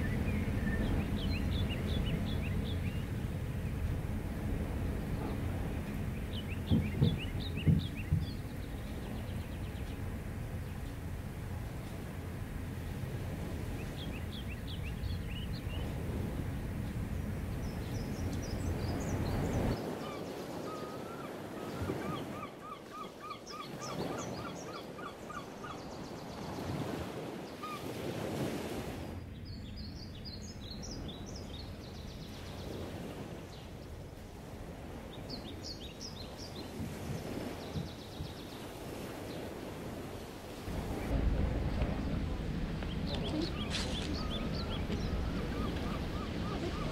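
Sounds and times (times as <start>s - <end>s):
birds calling: 0.0s - 28.4s, 29.1s - 41.1s, 41.8s - 46.9s
wind-like outdoor noise: 0.0s - 46.9s.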